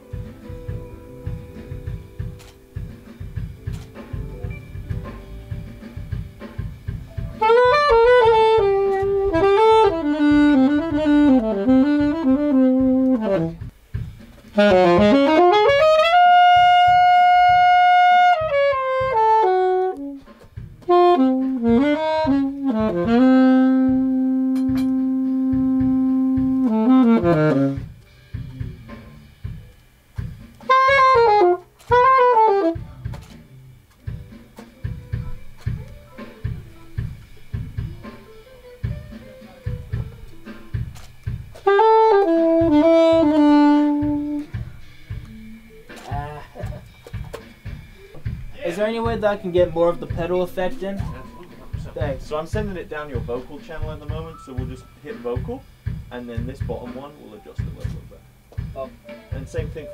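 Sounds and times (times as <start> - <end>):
alto saxophone playing jazz: 0.0 - 13.8, 14.5 - 55.6
low rhythmic thumps: 0.0 - 59.9.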